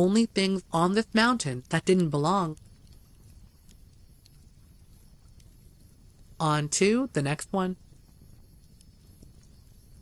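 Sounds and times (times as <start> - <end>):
soft ticks: 0.0 - 6.9, 7.8 - 10.0
faint background hum and hiss: 0.0 - 10.0.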